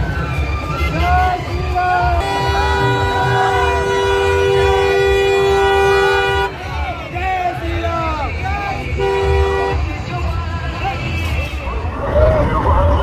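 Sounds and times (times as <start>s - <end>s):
men shouting in crowd: 0.9s - 9.8s
two-note car horn blast: 2.2s - 6.6s, 8.9s - 9.9s.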